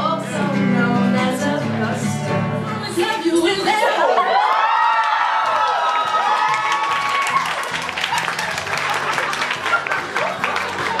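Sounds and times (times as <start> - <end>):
pop song with vocals: 0.0 - 4.3
audience clapping and cheering: 4.2 - 11.0.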